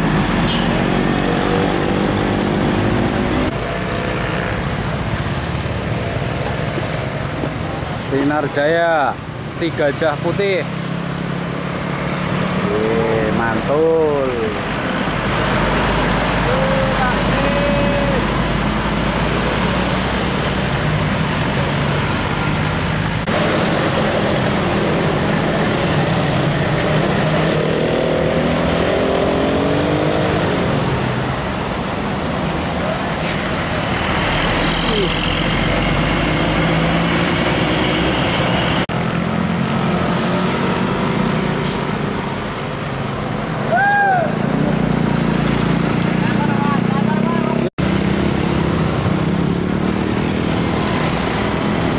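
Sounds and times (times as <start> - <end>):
bus diesel engines passing: 0.0 - 51.9.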